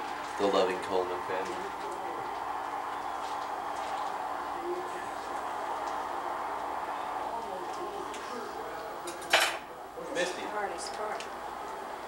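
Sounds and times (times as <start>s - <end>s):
dishes and utensils clattering: 9.0s - 9.7s.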